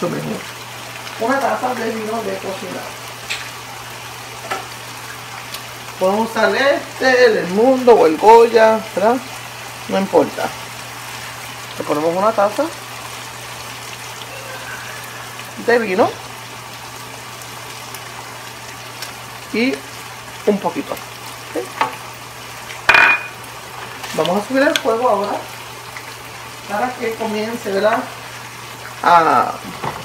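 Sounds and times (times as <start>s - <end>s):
food sizzling in a skillet: 0.0s - 30.0s.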